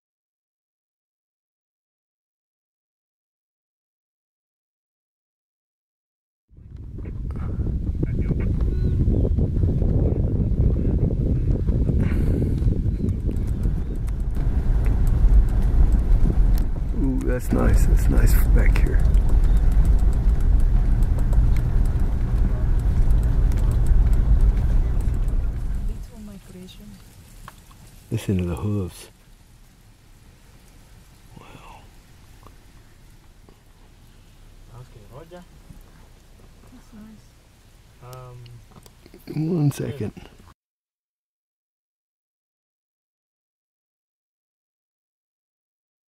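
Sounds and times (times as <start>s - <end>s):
herd hooves drumming on ground: 8.0s - 37.4s.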